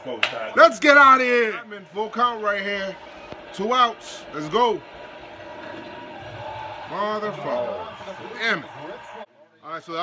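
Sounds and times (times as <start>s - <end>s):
faint television broadcast: 0.0s - 10.0s.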